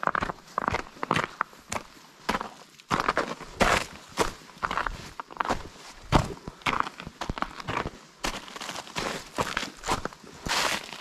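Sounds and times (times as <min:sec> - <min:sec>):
footsteps on rocky trail: 0:00.0 - 0:11.0.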